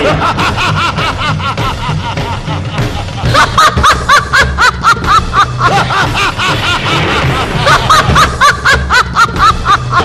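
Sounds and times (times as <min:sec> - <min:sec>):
dramatic background music: 0:00.0 - 0:10.0
man's villain laugh: 0:00.0 - 0:10.0.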